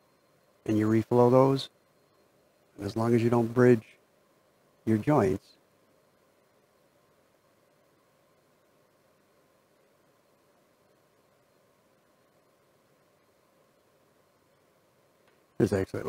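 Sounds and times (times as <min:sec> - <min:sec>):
light hiss: 0:00.0 - 0:16.0.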